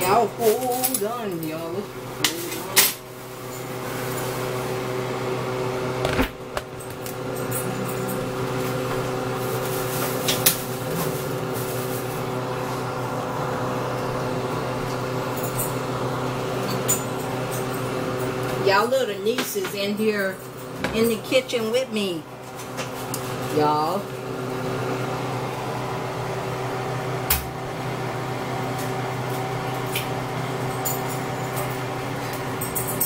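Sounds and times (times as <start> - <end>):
appliance motor hum: 0.0 - 33.0.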